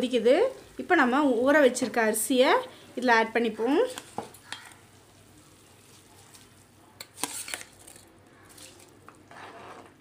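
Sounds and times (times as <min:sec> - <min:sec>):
woman's voice: 0:00.0 - 0:04.0
rice and water bubbling: 0:02.7 - 0:09.4.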